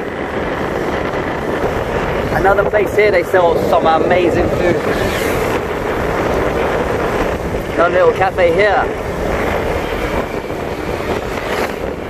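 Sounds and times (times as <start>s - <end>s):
road noise: 0.0s - 12.0s
motorbike engine: 3.5s - 7.8s, 8.8s - 12.0s.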